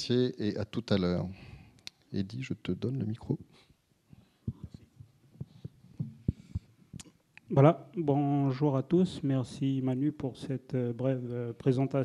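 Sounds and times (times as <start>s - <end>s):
microphone handling thumps: 4.4s - 7.0s.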